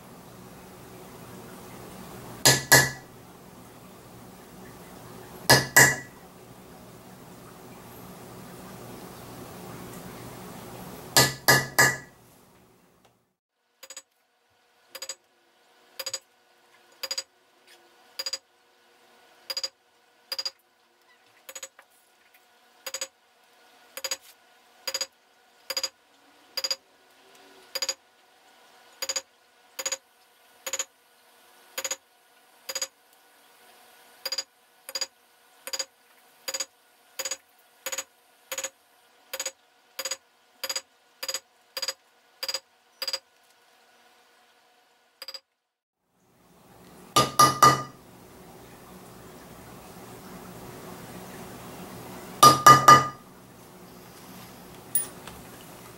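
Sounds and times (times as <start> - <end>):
mallet striking metal tool: 2.4 - 3.0, 5.5 - 6.1, 11.2 - 12.1, 47.2 - 47.9, 52.4 - 53.2.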